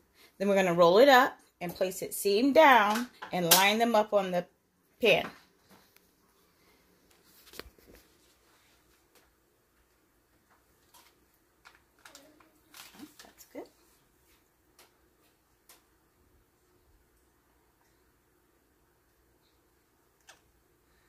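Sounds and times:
faint knocks and rustles of food: 0:05.2 - 0:16.0.

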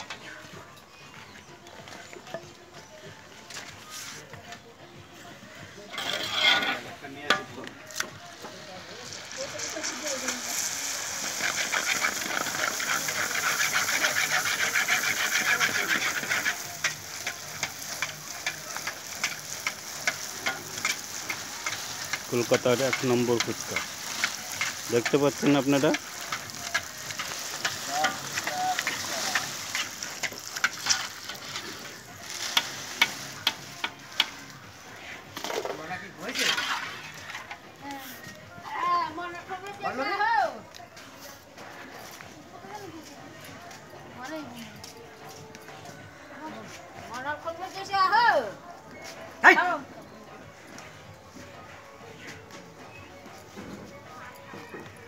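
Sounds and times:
shells sizzling in hot oil: 0:05.9 - 0:37.6
oil crackling: 0:05.9 - 0:40.6
people talking: 0:08.5 - 0:10.8
ladle stirring in wok: 0:10.5 - 0:34.3.

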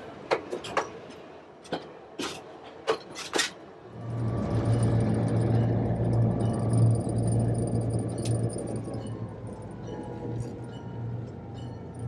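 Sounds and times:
diesel locomotive engine drone: 0:03.6 - 0:12.0.

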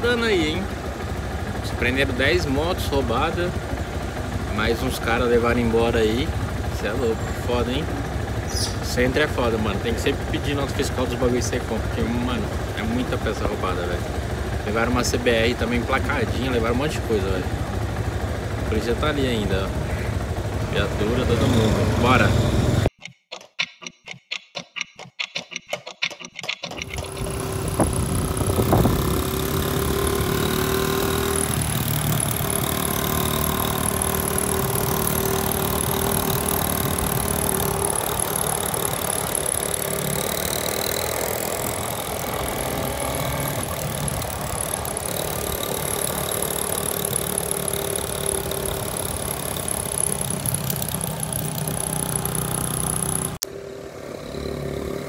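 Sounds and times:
motorcycle engine running: 0:00.0 - 0:22.9, 0:26.8 - 0:55.0
road noise: 0:00.0 - 0:22.9, 0:26.8 - 0:55.0
clock ticking: 0:22.9 - 0:26.9.

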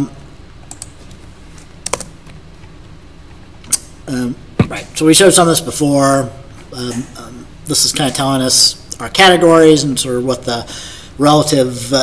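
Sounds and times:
computer keyboard keystrokes: 0:00.7 - 0:01.0, 0:01.8 - 0:02.1.

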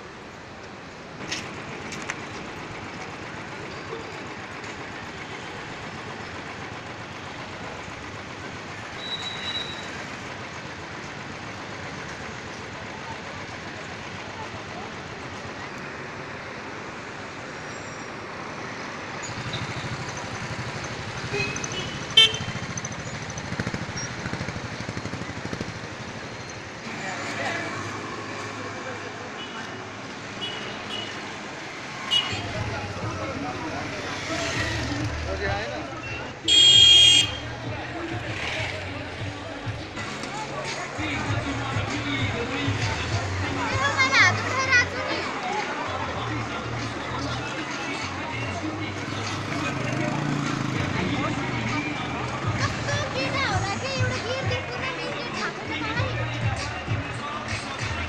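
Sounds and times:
road and wind noise: 0:00.0 - 0:58.0
voices: 0:01.2 - 0:58.0.

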